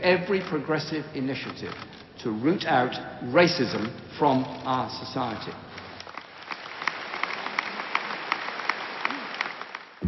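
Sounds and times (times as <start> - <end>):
audience applauding: 6.0 - 10.0.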